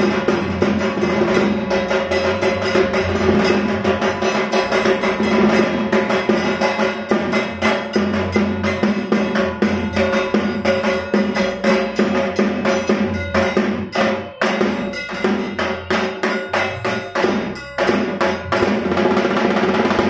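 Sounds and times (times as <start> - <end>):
fast drum beat: 0.0 - 20.0.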